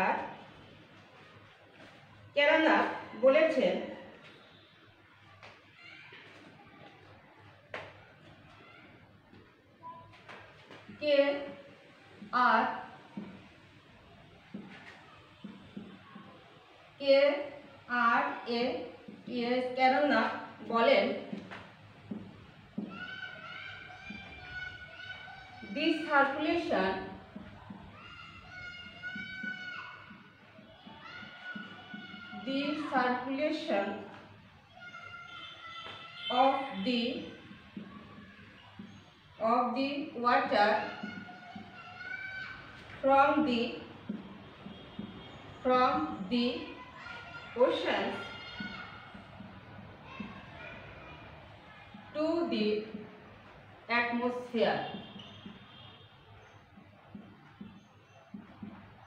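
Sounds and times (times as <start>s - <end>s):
woman speaking with room echo: 0.0s - 0.4s, 2.4s - 4.1s, 10.9s - 11.6s, 32.4s - 34.2s, 52.2s - 53.0s, 53.9s - 55.0s
distant voices: 0.0s - 59.0s
faint taps: 13.1s - 13.5s, 14.4s - 16.4s, 21.2s - 23.3s, 27.1s - 32.5s, 37.4s - 39.1s, 40.8s - 43.0s, 44.0s - 45.6s, 48.1s - 50.6s, 54.9s - 59.0s.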